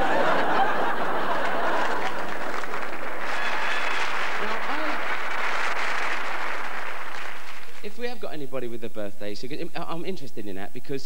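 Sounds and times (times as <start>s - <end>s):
audience applauding: 0.0s - 8.1s
voice from the crowd: 3.2s - 5.3s.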